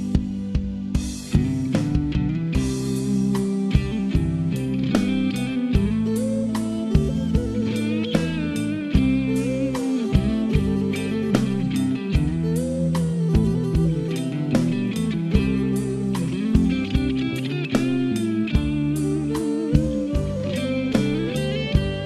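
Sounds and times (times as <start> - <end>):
bass: 0.0 - 22.0
guitar with bent notes: 0.0 - 22.0
steady drum beat: 0.0 - 22.0.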